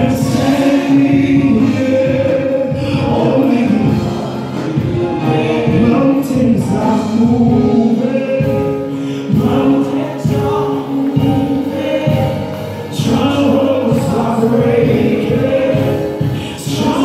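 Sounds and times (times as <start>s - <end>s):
choir singing gospel: 0.0s - 17.0s
keyboard accompaniment: 0.0s - 17.0s.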